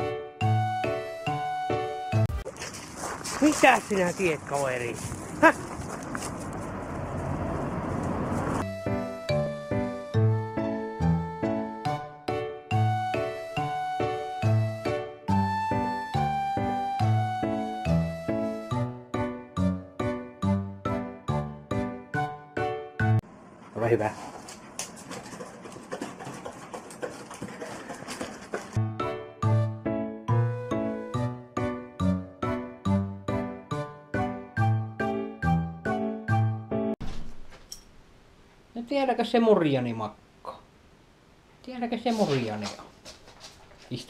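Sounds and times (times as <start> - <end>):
dog eating from metal bowl: 24.3 - 28.8.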